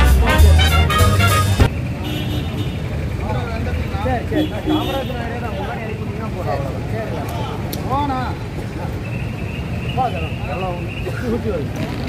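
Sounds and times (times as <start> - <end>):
people talking: 0.0 - 1.4, 3.1 - 9.1, 9.9 - 11.8
brass band music: 0.0 - 1.7
steady traffic hum: 0.0 - 12.0.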